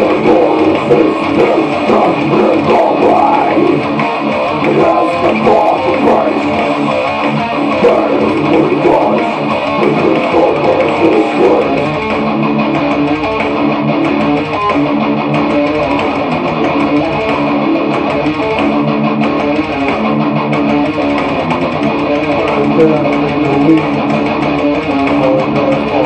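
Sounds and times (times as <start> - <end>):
electric guitar metal riff: 0.0 - 26.0.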